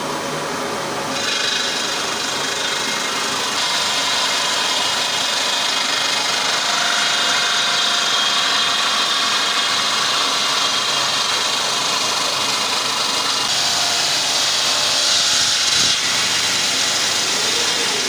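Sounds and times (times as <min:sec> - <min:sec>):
circular saw grinding through stone: 0:01.1 - 0:18.0.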